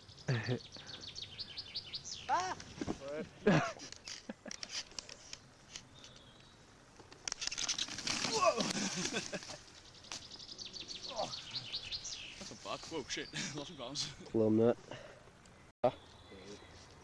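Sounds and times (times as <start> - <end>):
person shouting or laughing: 2.3 - 3.7, 8.3 - 9.0
skateboard wheels on gravel: 7.4 - 9.7.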